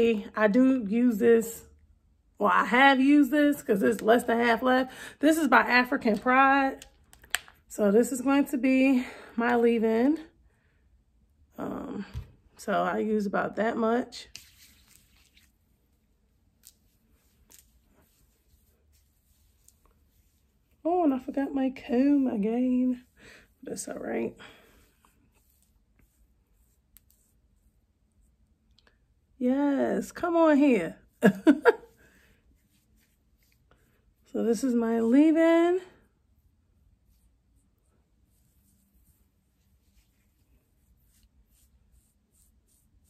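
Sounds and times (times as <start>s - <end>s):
fingers rustling through damp hair: 14.2s - 27.9s, 31.8s - 34.9s, 36.8s - 43.0s.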